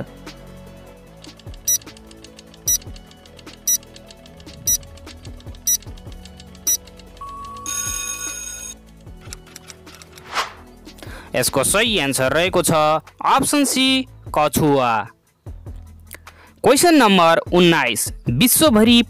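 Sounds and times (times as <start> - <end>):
quiet background music: 0.0 - 19.0
clock ticking: 1.5 - 3.0
alarm bell ringing: 7.2 - 8.8.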